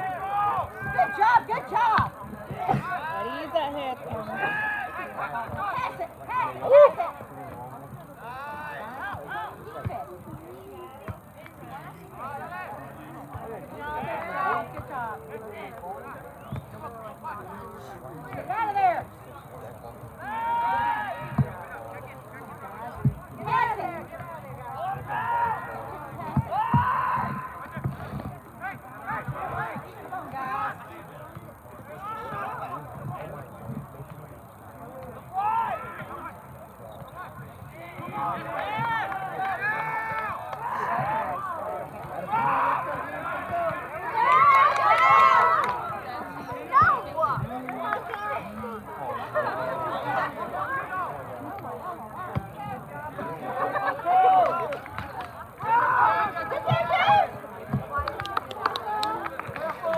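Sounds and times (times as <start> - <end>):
people shouting and calling: 0.0 - 7.6, 17.3 - 33.4, 34.8 - 59.9.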